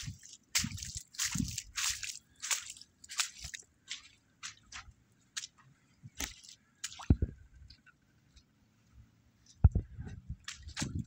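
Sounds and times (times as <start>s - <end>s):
water sloshing and bubbling: 0.0s - 8.4s, 9.6s - 11.0s.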